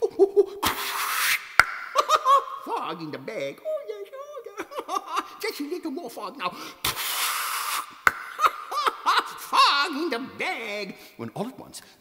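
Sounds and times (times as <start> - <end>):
man making breathy hiss: 0.5 - 1.6, 6.6 - 8.1
sharp mouth click: 1.2 - 2.0.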